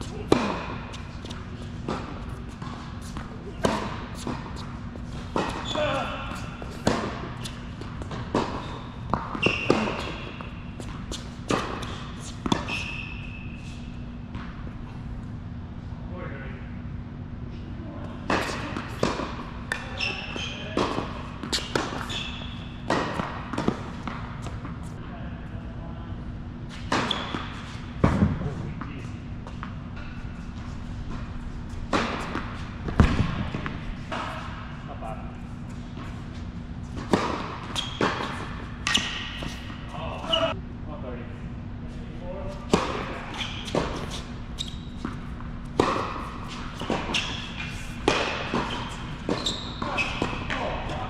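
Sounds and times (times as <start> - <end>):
tennis ball struck by racquets: 0.1 - 12.8, 18.2 - 24.8, 31.9 - 34.6, 37.0 - 39.9, 44.9 - 51.0
tennis ball bouncing on hard court: 0.1 - 13.2, 18.2 - 24.9, 26.7 - 28.5, 31.1 - 34.6, 36.8 - 39.9, 42.7 - 51.0.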